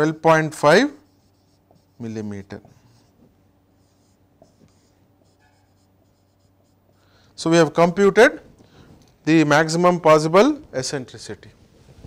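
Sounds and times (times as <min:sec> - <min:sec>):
marker pen scratching on whiteboard: 0:00.6 - 0:07.0.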